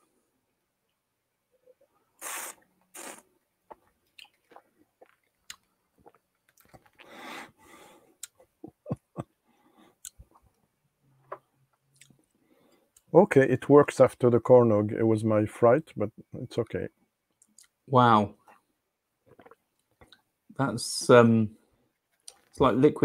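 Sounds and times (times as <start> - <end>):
slurping sips: 2.2 - 3.3.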